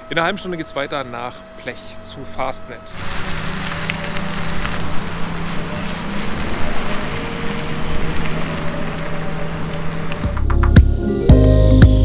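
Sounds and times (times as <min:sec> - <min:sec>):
wind buffeting microphone: 0:00.2 - 0:10.5.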